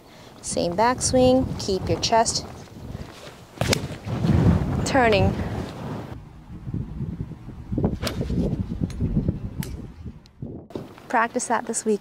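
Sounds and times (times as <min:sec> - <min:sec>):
microphone rustling: 0:00.6 - 0:06.2, 0:07.8 - 0:11.0.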